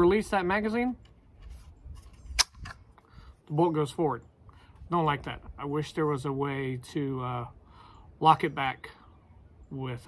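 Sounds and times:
rifle bolt snapping forward: 2.3s - 2.8s.

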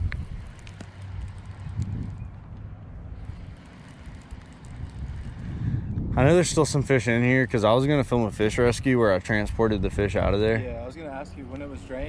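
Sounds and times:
fishing reel ticking: 0.0s - 1.9s, 3.2s - 5.6s
wind rumbling on microphone: 0.0s - 10.9s.

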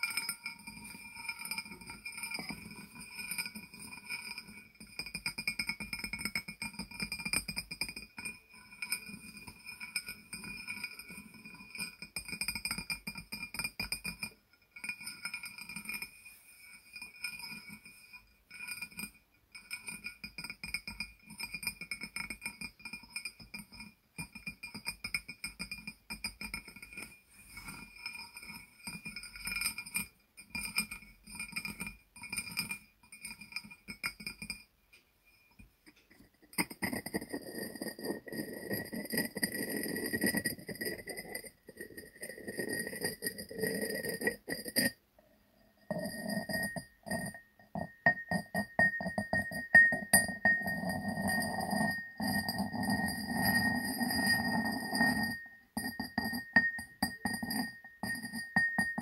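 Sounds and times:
fingers tapping ceramic jar: 0.0s - 34.7s, 35.4s - 45.0s, 45.8s - 59.0s.

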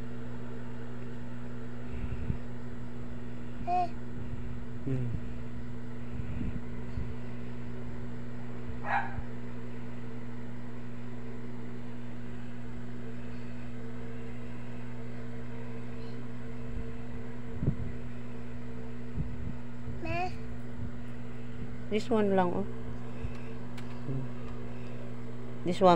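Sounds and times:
low mechanical hum: 0.0s - 25.9s.

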